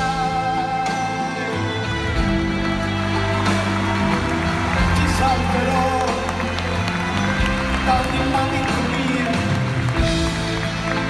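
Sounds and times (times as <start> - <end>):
live band playing a slow ballad: 0.0 - 11.0
person singing: 0.0 - 11.0.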